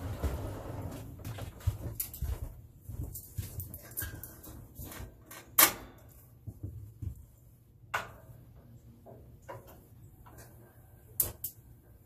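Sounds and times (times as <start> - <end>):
footsteps: 0.0 - 5.2.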